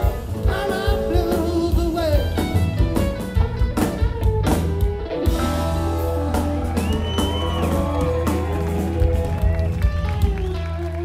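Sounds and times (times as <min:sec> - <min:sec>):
bass line: 0:00.0 - 0:11.0
bending lead guitar notes: 0:00.0 - 0:11.0
drums: 0:00.0 - 0:11.0.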